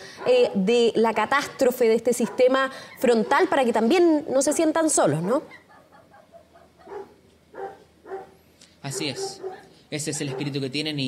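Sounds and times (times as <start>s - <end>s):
faint dog barking: 0.0s - 0.7s, 2.1s - 3.8s, 4.4s - 11.0s.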